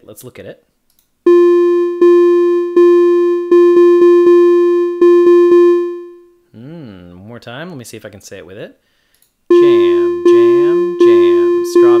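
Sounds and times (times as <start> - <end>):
synthesized rhythm on one pitch: 1.3 - 6.3, 9.5 - 12.0.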